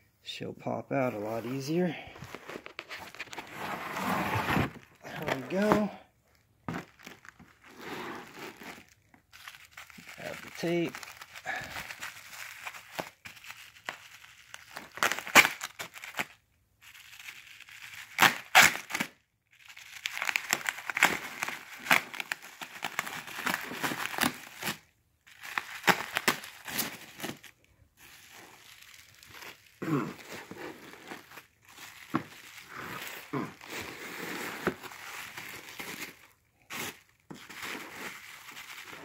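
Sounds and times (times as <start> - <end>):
bubble wrap crinkling: 1.2 - 39.0
packing tape peeling: 9.4 - 16.3, 17.8 - 19.1, 25.4 - 27.4.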